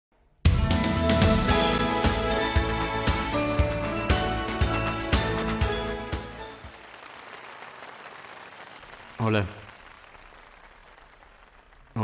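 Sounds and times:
large audience applause: 0:05.0 - 0:12.0.

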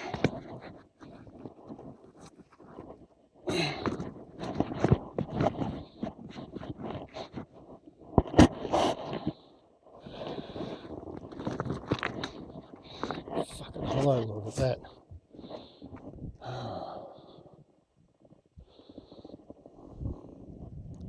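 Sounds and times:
rustling and scraping: 0:00.0 - 0:09.5, 0:10.2 - 0:16.2
stones knocking: 0:11.2 - 0:14.2.

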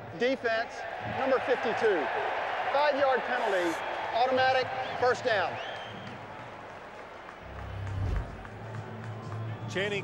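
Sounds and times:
stadium crowd hubbub: 0:00.0 - 0:10.0
low rumbling whoosh: 0:07.7 - 0:08.5.

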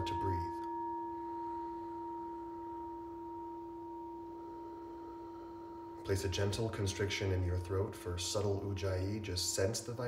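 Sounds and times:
singing bowl ringing: 0:00.0 - 0:09.2.

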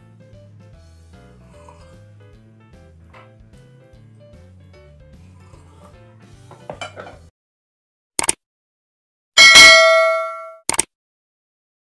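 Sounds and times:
mouse-style click: 0:08.2 - 0:08.4, 0:10.7 - 0:10.9
bell ding: 0:09.4 - 0:10.6.

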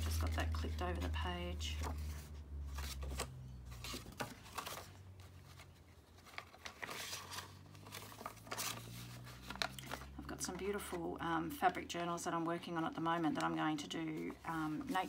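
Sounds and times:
paper rustling and crinkling: 0:00.0 - 0:11.1, 0:12.7 - 0:15.0.

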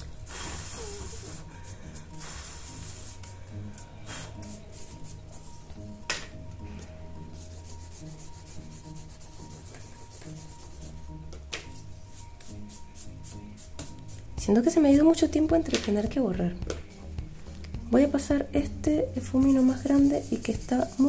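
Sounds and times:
eraser rubbing on paper: 0:00.3 - 0:03.3, 0:04.0 - 0:05.7, 0:07.3 - 0:11.0, 0:19.3 - 0:21.0.

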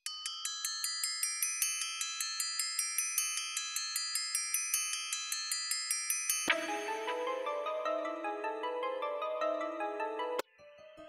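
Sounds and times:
synthesizer mallet melody: 0:06.5 - 0:11.0.

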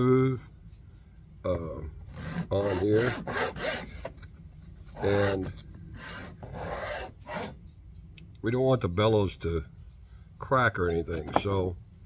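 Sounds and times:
file scraping wood: 0:02.1 - 0:04.1, 0:04.9 - 0:07.6.

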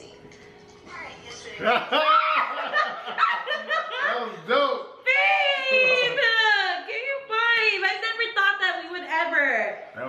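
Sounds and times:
man and woman laughing: 0:01.6 - 0:04.5.

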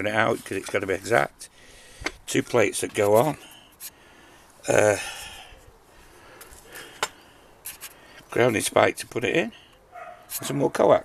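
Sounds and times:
light rustling of parts: 0:06.3 - 0:08.6.

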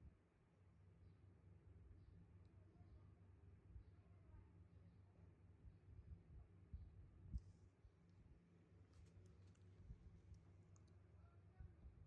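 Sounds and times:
faint clicks: 0:08.9 - 0:11.0.

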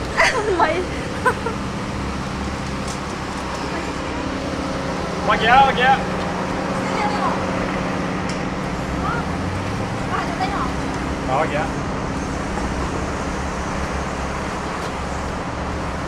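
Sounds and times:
road traffic hum: 0:00.0 - 0:16.0.

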